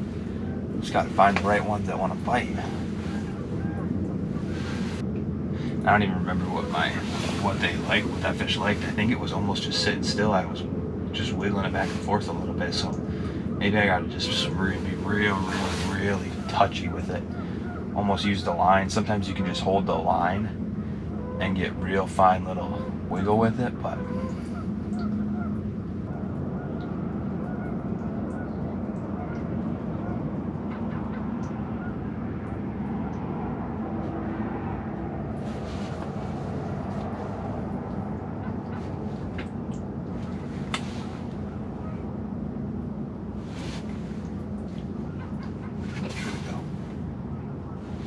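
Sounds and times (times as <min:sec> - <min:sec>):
steady low drone: 0:00.0 - 0:48.0.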